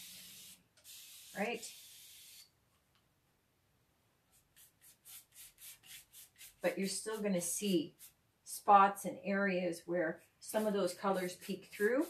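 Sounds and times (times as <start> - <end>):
spray bottle misting: 0.0 - 2.5, 4.6 - 7.3, 10.4 - 12.0
paintbrush swishing on wood: 10.1 - 12.0.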